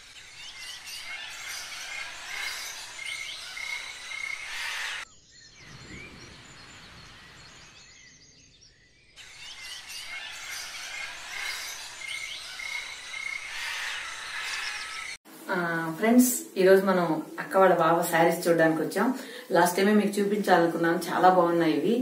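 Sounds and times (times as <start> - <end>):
birds chirping and calling: 0.0 - 15.2
steady background hiss: 11.4 - 22.0.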